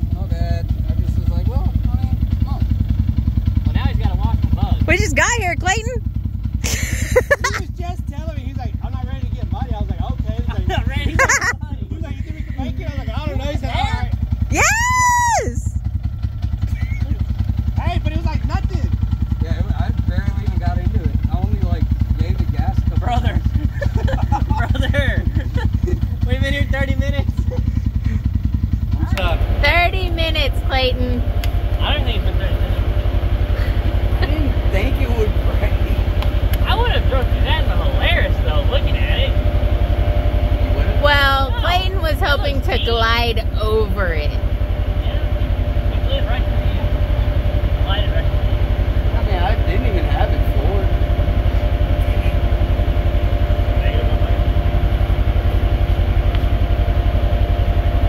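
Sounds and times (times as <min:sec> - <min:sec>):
vehicle engine idling: 0:00.0 - 0:58.0
people talking: 0:00.2 - 0:02.6, 0:03.6 - 0:06.0, 0:06.7 - 0:15.7, 0:16.6 - 0:17.2, 0:17.8 - 0:28.2, 0:29.0 - 0:31.2, 0:31.8 - 0:33.0, 0:33.6 - 0:39.4, 0:40.6 - 0:44.4, 0:45.0 - 0:48.5, 0:49.1 - 0:51.1, 0:53.6 - 0:54.5.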